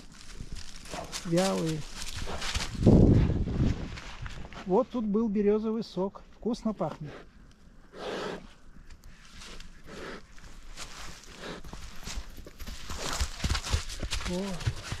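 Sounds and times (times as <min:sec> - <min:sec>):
footsteps in dry leaves: 0:00.0 - 0:04.8, 0:09.1 - 0:15.0.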